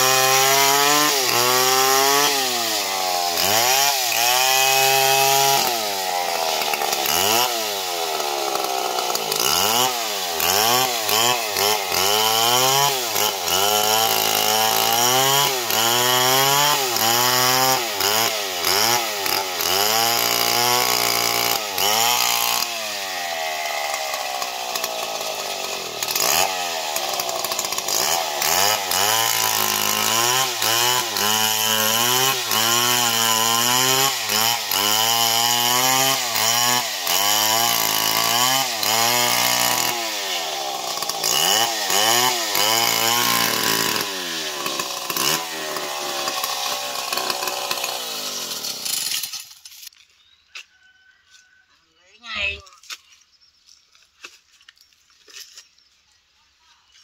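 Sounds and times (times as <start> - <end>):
chain cutting wood: 0.0 - 50.7
chainsaw engine under load: 0.0 - 51.5.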